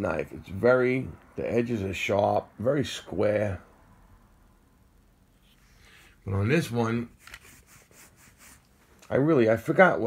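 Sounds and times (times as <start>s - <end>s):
knives rubbing on cloth: 7.1s - 8.7s.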